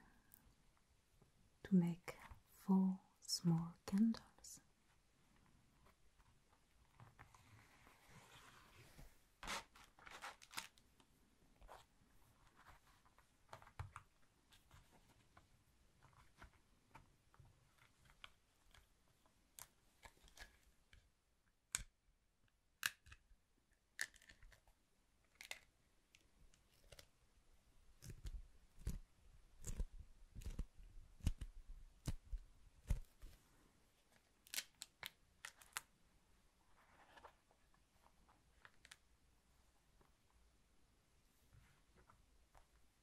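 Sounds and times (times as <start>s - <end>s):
beeswax sheet crackling: 28.0s - 35.9s.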